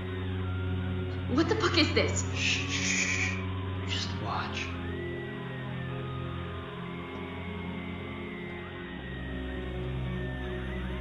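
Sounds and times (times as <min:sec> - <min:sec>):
dark droning horror music: 0:00.0 - 0:11.0.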